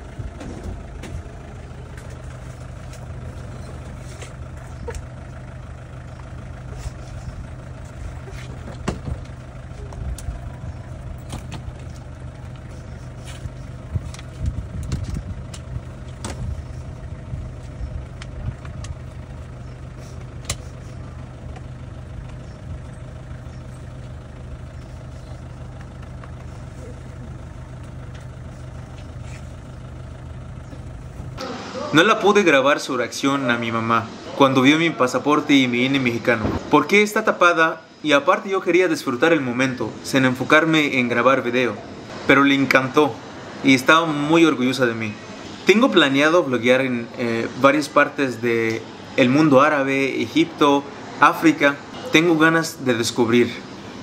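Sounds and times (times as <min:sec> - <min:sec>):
vehicle engine idling: 0:00.0 - 0:54.0.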